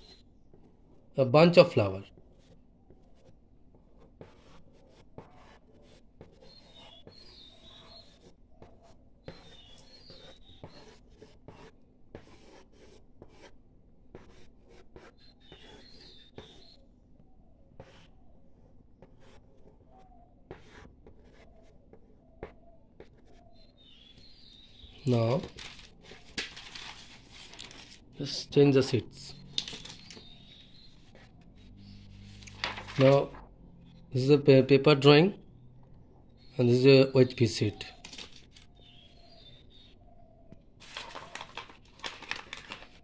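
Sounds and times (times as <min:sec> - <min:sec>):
pencil scratching on paper: 0:02.1 - 0:16.8, 0:17.4 - 0:24.3, 0:30.2 - 0:32.4.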